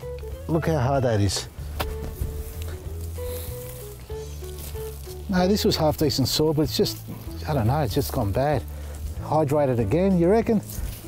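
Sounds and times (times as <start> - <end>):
simple melody over bass line: 0.0 - 11.0.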